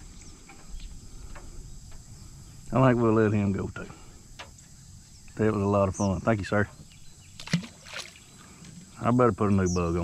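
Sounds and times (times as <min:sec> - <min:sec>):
fish splashing into water: 0:07.4 - 0:08.4.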